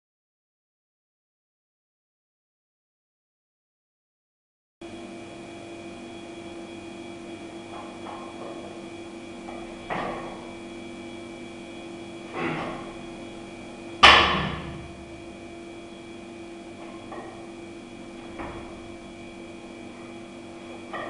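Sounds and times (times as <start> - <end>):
steady electrical hum: 4.8 - 21.0
barbell plates ringing: 20.8 - 21.0.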